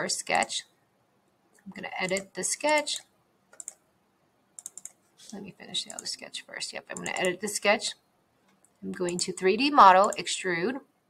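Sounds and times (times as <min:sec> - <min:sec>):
computer mouse clicks: 0:01.5 - 0:03.8, 0:04.6 - 0:06.2, 0:06.9 - 0:07.4, 0:08.4 - 0:10.3.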